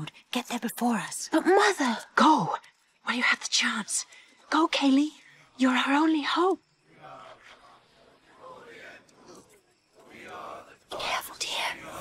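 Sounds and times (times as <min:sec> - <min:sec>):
breathy whispered voice: 0:05.2 - 0:12.0.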